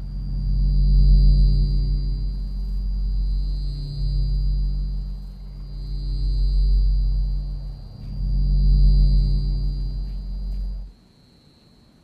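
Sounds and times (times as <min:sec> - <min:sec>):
ominous low drone: 0:00.0 - 0:11.0
steady high ringing tone: 0:00.0 - 0:12.0.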